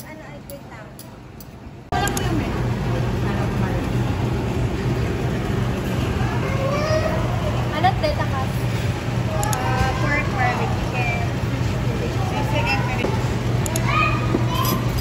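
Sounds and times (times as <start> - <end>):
steady low hum: 0.0 - 15.0
chatter of voices: 1.9 - 15.0.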